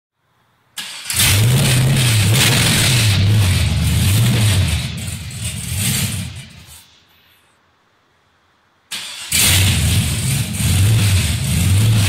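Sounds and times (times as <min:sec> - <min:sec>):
engine cranking: 0:00.8 - 0:06.8, 0:08.9 - 0:12.0
engine running loud: 0:01.1 - 0:06.8, 0:09.3 - 0:12.0.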